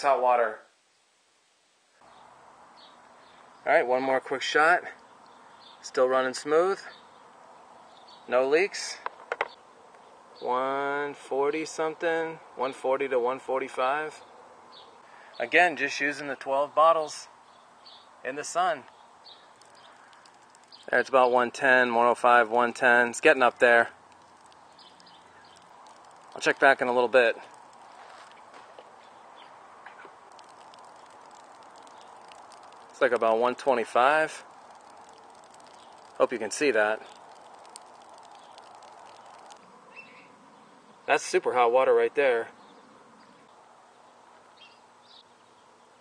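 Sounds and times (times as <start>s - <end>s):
faint background hiss: 0.0s - 46.0s
faint background noise: 0.0s - 46.0s
faint steady hum: 14.2s - 46.0s
light ticks: 18.8s - 20.9s, 24.0s - 28.4s, 29.9s - 39.6s
man speaking: 26.4s - 27.4s, 33.0s - 34.4s, 36.2s - 37.0s.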